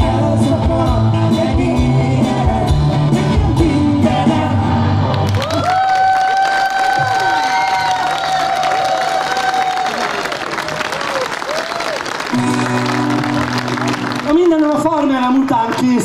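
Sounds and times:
guitar and keyboard chord: 0.0 - 5.3
audience applauding and cheering: 5.0 - 16.0.

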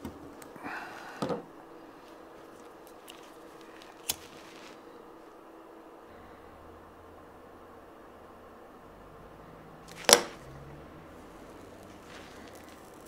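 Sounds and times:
soft hiss: 0.0 - 13.0.

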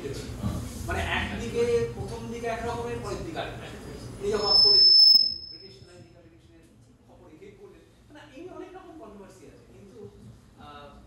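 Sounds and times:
high steady whistling tone: 4.2 - 5.9.

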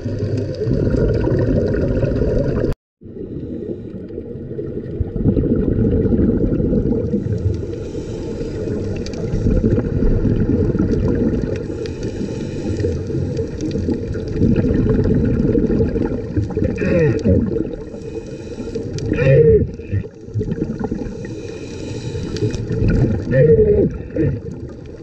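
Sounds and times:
underwater rumble of moving water: 0.0 - 25.0
faint ticks: 7.4 - 9.3, 21.4 - 22.8.

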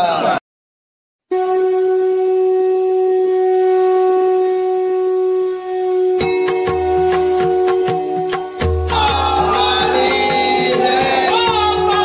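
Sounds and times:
long horn-like note: 1.3 - 12.0.

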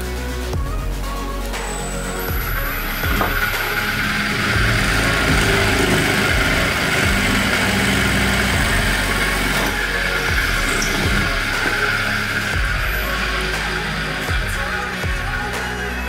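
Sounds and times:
background music: 0.0 - 16.0
motor drilling into wood: 2.3 - 14.9.

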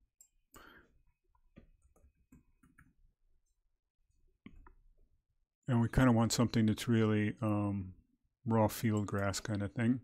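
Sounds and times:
keyboard and mouse clicks: 1.3 - 3.0, 8.8 - 9.5.

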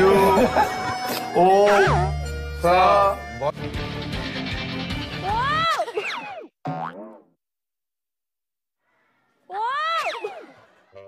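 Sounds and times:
background music: 0.0 - 5.7
cartoon boing sound effect: 6.7 - 7.4.

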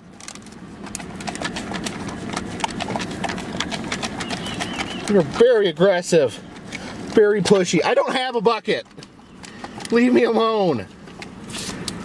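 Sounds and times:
deer chewing and crunching pellets: 0.0 - 12.0.

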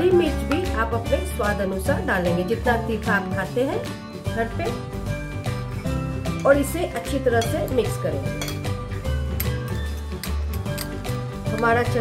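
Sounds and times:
background music with bass line: 0.0 - 12.0
metal spoons clinking on glass bowl: 7.3 - 7.7, 8.3 - 11.7.

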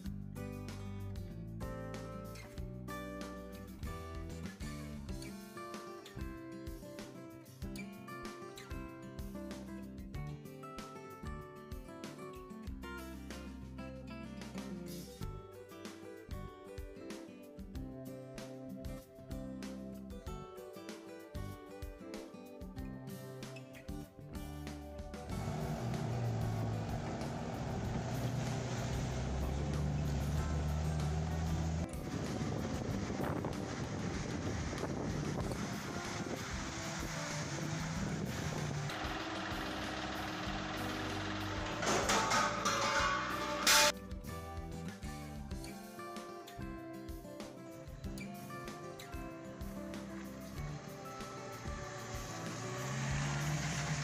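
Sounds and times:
car engine running: 25.3 - 43.9, 49.5 - 54.0.

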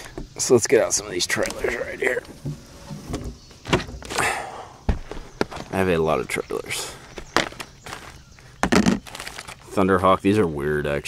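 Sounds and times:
plastic packets rustling: 7.0 - 9.8.

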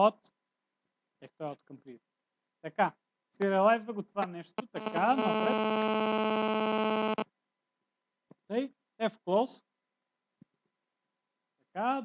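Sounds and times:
buzzing electronic tone: 4.6 - 7.2.

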